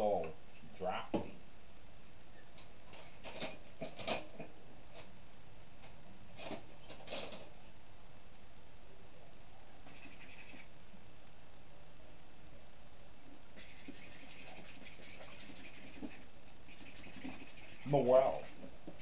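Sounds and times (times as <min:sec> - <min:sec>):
background hiss: 0:00.0 - 0:19.0.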